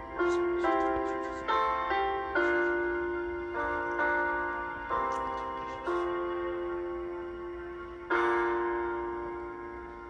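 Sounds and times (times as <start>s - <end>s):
slow piano chords: 0.0s - 10.0s.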